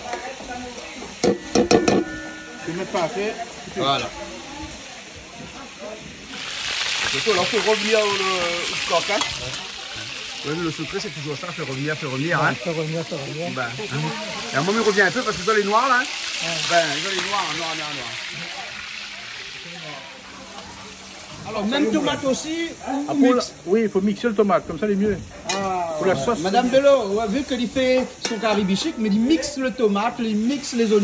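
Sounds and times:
chicken frying in a pot: 0:00.0 - 0:31.0
onions sizzling in a pan: 0:00.0 - 0:31.0.

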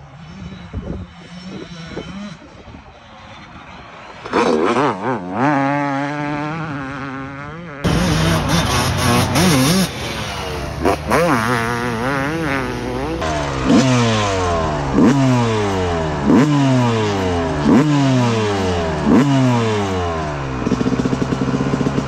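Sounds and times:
two-stroke dirt bike engine revving: 0:00.0 - 0:22.0.

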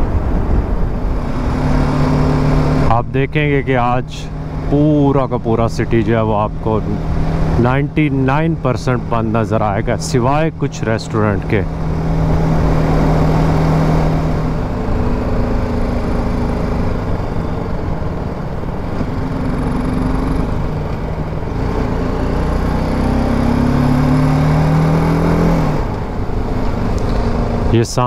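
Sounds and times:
riding wind rushing: 0:00.0 - 0:22.0
motorcycle engine revving: 0:00.2 - 0:27.8.

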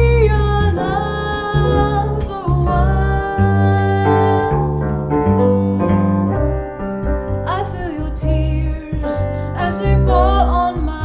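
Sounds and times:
piano chords: 0:00.0 - 0:11.0
plucked double bass: 0:00.0 - 0:11.0.

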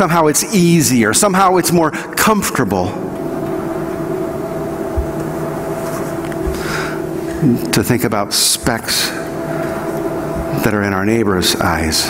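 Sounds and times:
machinery hum: 0:00.0 - 0:12.0.

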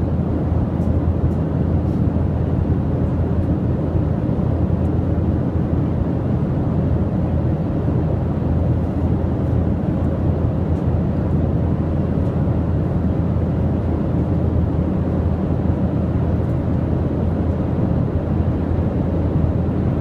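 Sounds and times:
airliner cabin rumble: 0:00.0 - 0:20.0.

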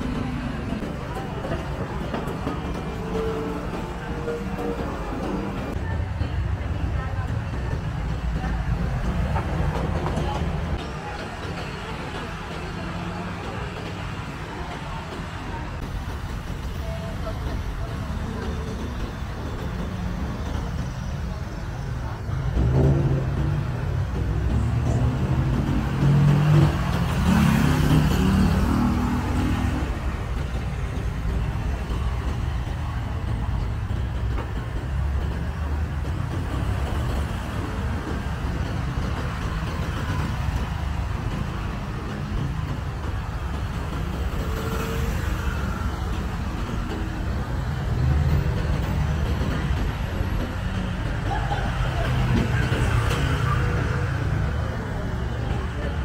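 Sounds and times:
cars driving past: 0:22.3 - 0:31.0.

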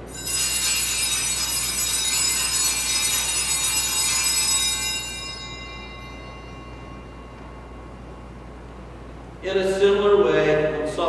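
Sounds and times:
altar bells ringing: 0:00.0 - 0:09.1.

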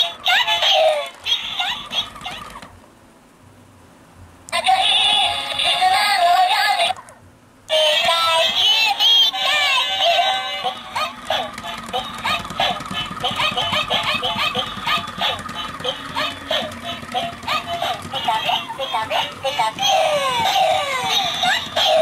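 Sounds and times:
toy playing song through speaker: 0:00.0 - 0:02.7, 0:04.6 - 0:07.0, 0:07.7 - 0:22.0.

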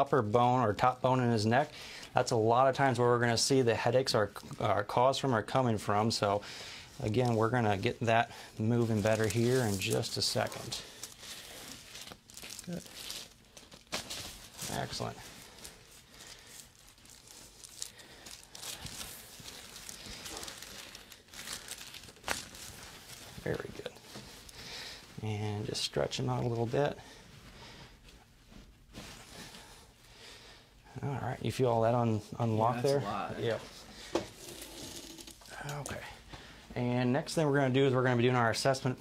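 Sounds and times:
faint soft movement noise: 0:00.2 - 0:38.9
paper and clothing rustling: 0:07.0 - 0:30.0.

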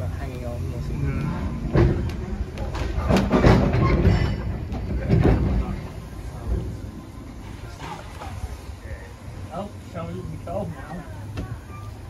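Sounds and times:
wheels and couplings clanking: 0:00.0 - 0:08.6
train rumbling on track: 0:00.0 - 0:12.0.

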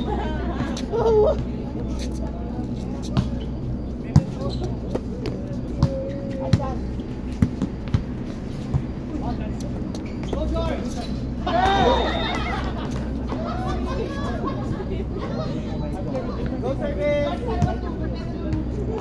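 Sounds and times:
crowd chatter: 0:00.0 - 0:19.0
voices shouting: 0:11.4 - 0:15.4.

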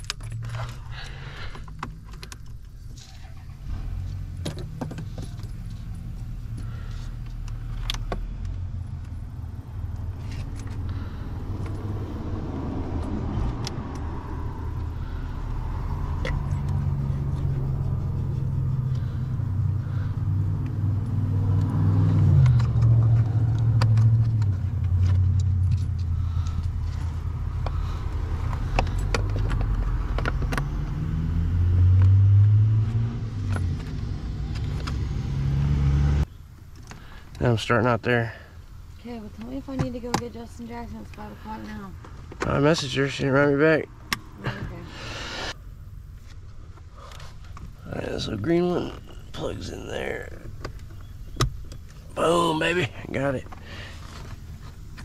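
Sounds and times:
engine drone: 0:03.0 - 0:37.2.

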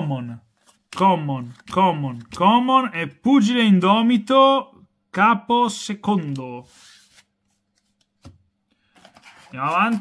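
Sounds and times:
trading cards handled: 0:00.5 - 0:02.4, 0:06.2 - 0:10.0.

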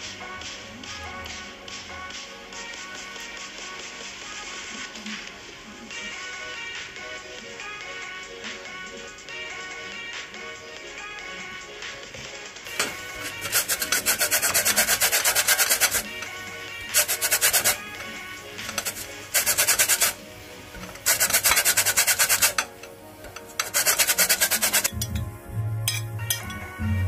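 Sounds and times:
food rasping on metal grater: 0:12.7 - 0:25.0.

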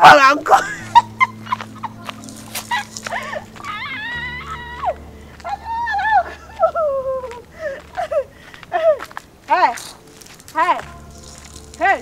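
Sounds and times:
steady low drone: 0:00.6 - 0:08.7
whining whimper-like cries: 0:02.6 - 0:09.0.

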